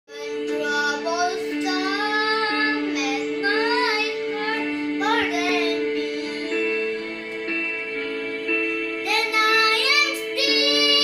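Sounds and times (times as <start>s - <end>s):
boy singing: 0.1s - 6.7s, 9.0s - 11.0s
held low accompaniment notes: 0.1s - 11.0s.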